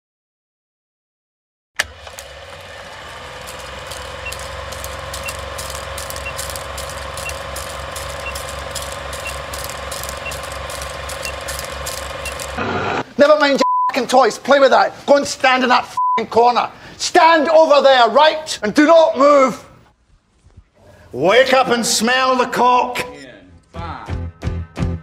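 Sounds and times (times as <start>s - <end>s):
film projector clattering: 1.8s - 12.7s.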